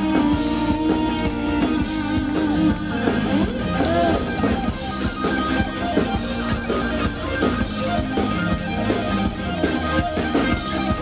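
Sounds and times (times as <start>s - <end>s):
electric guitar: 0.0s - 11.0s
live rock band: 0.0s - 11.0s.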